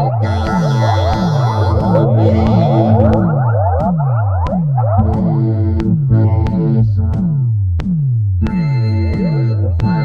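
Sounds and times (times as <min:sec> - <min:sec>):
sustained synthesizer chord: 0:00.0 - 0:07.5
kick drum with falling bass: 0:00.0 - 0:10.0.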